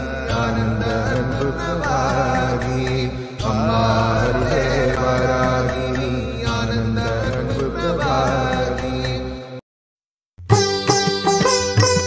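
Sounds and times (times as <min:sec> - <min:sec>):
voice chanting: 0:00.1 - 0:09.0.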